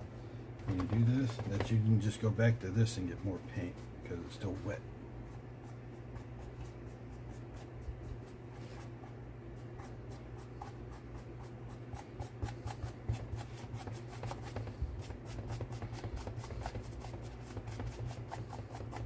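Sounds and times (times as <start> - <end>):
paintbrush scrubbing on paper: 3.2 - 19.0.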